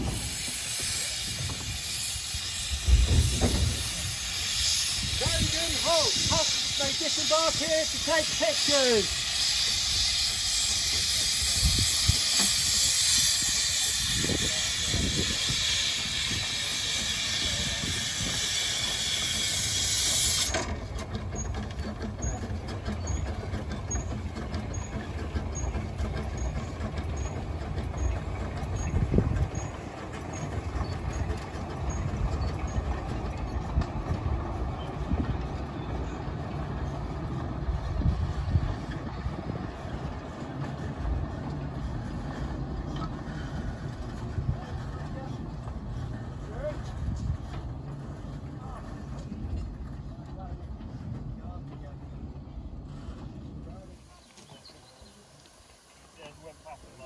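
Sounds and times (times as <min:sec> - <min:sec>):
steam hissing from locomotive: 0:00.0 - 0:41.0, 0:52.8 - 0:57.0
train rumbling past: 0:00.0 - 0:57.0.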